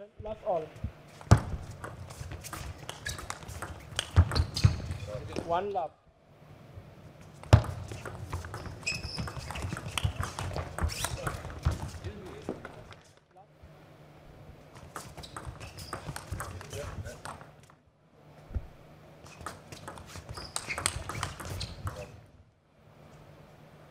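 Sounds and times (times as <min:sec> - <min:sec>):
table tennis ball clicking: 0:19.4 - 0:22.1.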